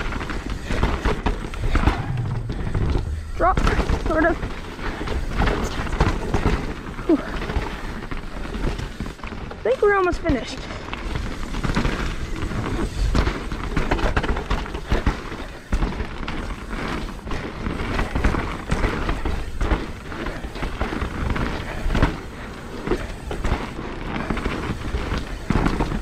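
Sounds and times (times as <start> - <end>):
bike knocking and rattling: 0.0 - 26.0
bike tyres crunching on dirt: 0.0 - 26.0
wind rumble on microphone: 1.6 - 4.5.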